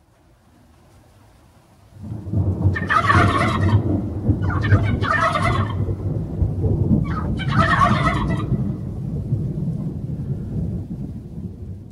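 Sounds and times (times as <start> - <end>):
steady low rumble: 2.0 - 11.9
turkeys gobbling: 2.7 - 6.0, 7.0 - 8.8.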